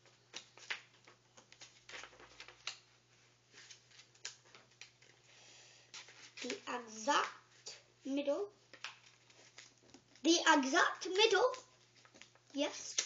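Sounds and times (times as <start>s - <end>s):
paper rustling: 0.0s - 5.3s, 5.9s - 7.6s, 8.7s - 13.0s.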